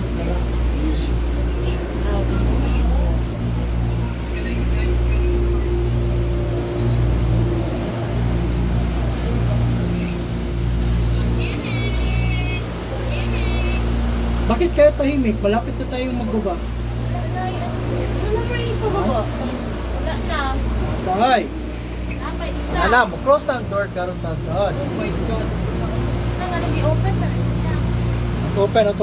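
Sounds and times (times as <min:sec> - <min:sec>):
machinery rumble and hum: 0:00.0 - 0:29.0.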